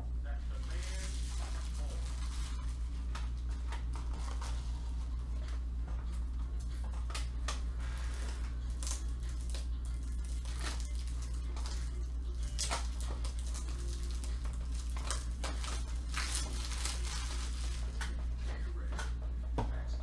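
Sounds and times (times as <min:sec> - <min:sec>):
steady low hum: 0:00.0 - 0:20.0
crinkling and rustling handling: 0:00.3 - 0:19.2.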